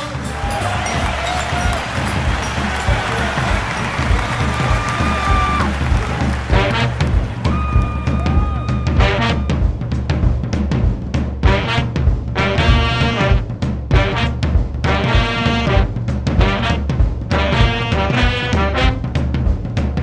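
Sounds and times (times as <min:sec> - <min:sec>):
bass: 0:00.0 - 0:20.0
driving drum beat: 0:00.0 - 0:20.0
swing music: 0:00.0 - 0:20.0.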